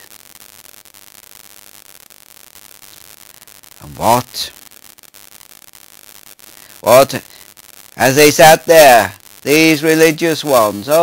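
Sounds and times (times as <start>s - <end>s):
static hiss: 0.0s - 11.0s
man speaking: 3.8s - 4.6s, 6.8s - 7.3s, 8.0s - 11.0s.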